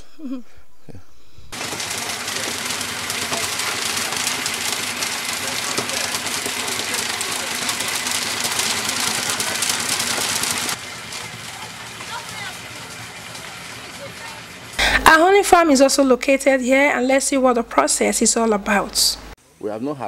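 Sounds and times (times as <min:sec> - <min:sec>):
machinery with fast knocking: 0:01.6 - 0:14.8.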